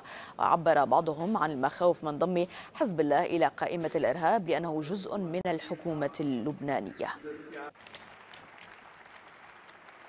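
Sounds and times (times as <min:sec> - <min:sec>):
faint applause: 0:07.8 - 0:10.0.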